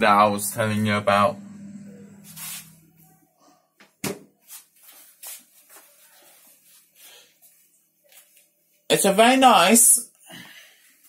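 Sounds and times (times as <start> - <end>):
low steady hum: 0.0 - 3.2.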